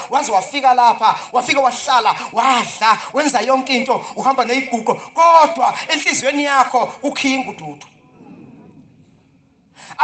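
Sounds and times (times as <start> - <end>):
man preaching: 0.0 - 8.1, 9.8 - 10.0.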